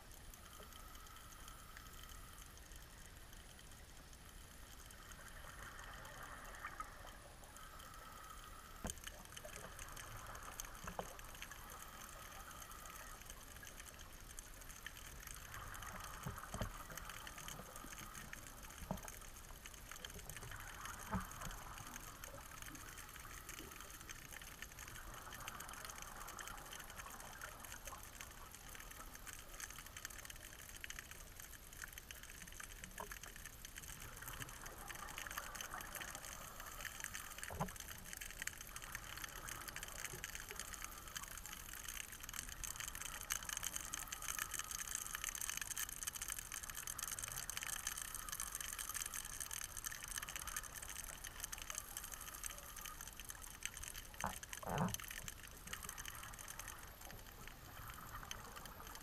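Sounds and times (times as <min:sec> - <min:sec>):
underwater crackling hiss: 0:00.0 - 0:59.0.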